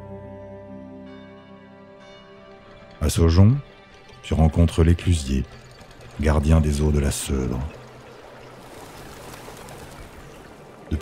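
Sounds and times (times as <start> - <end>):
water rushing through sluice: 4.2 - 11.0.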